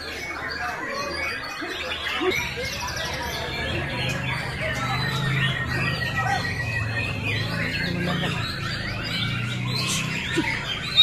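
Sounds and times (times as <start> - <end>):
songbirds singing: 0.0 - 11.0.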